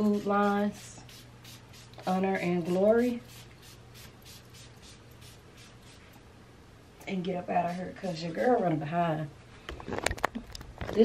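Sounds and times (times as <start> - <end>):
perfume atomizer spritzing: 3.2 - 6.1.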